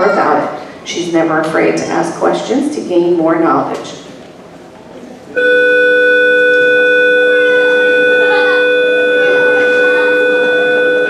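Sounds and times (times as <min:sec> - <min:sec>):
steady electronic tone: 0:05.3 - 0:11.0.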